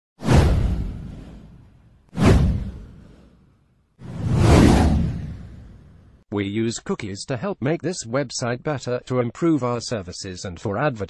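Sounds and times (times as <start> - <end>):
whoosh sound effects: 0.2 - 3.4, 4.0 - 6.1.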